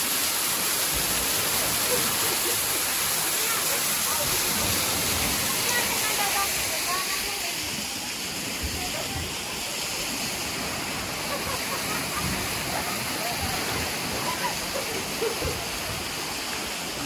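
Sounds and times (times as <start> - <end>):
sea water washing around rocks: 0.0 - 17.0.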